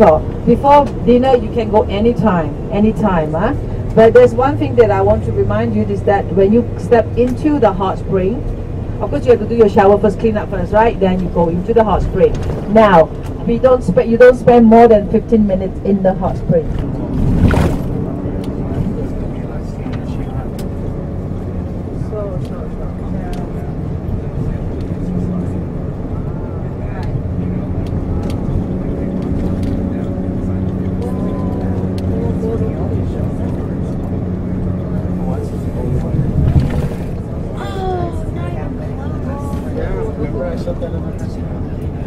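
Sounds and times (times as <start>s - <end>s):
bus engine and road noise: 0.0s - 42.0s.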